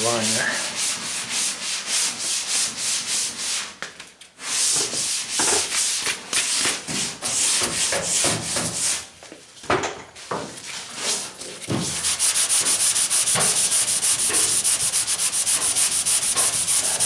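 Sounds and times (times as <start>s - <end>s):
sanding block rubbing: 0.1s - 3.7s, 10.8s - 17.0s.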